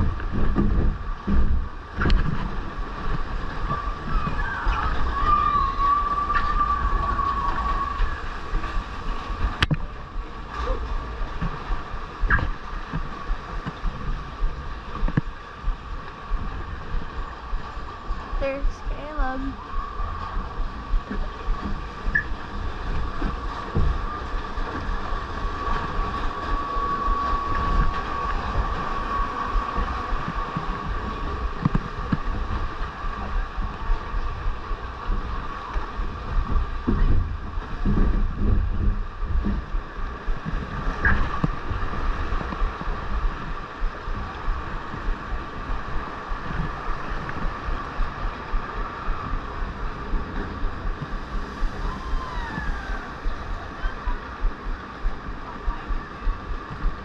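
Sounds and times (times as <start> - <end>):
running water: 0.0 - 57.0
wind on microphone: 0.0 - 57.0.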